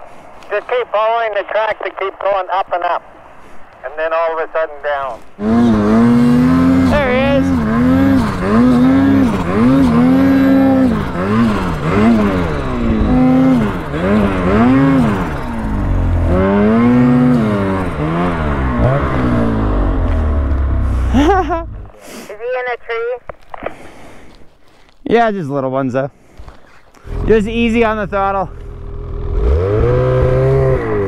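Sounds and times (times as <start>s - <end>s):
voices: 0.5s - 3.1s, 3.8s - 5.3s, 6.8s - 7.7s, 22.3s - 23.3s, 27.0s - 28.6s
snowmobile engine revving: 5.4s - 22.0s, 27.0s - 31.0s.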